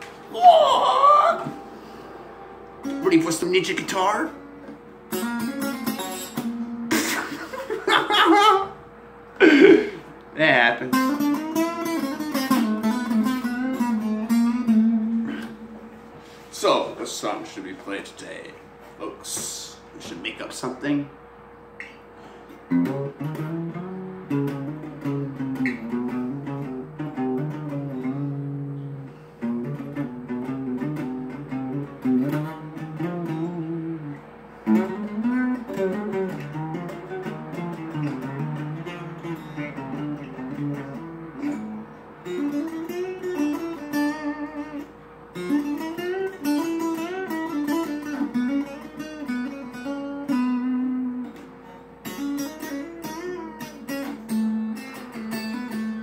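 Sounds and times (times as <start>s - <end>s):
acoustic guitar playing: 0.0s - 19.0s, 21.1s - 56.0s.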